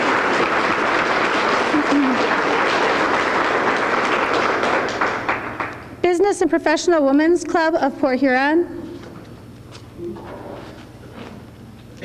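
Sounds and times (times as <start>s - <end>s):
audience applauding: 0.0s - 6.0s.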